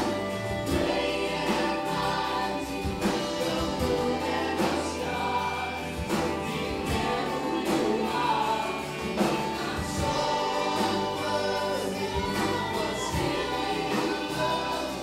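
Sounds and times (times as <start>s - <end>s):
voices singing together: 0.0s - 15.0s
worship band playing: 0.0s - 15.0s.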